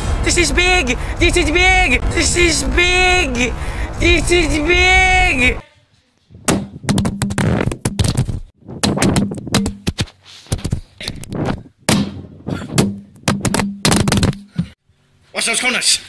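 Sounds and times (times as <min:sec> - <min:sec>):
camera handling knocks and rubbing: 0:06.8 - 0:11.6.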